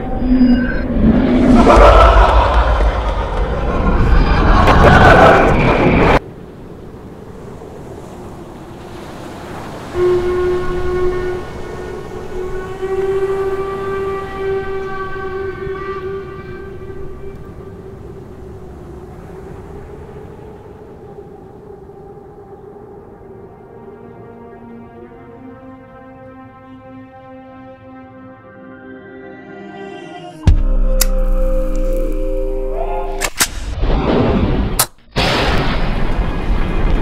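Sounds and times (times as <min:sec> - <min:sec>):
loud rushing roar: 0:00.0 - 0:06.2
low horn tone: 0:09.8 - 0:19.9, 0:23.4 - 0:33.3.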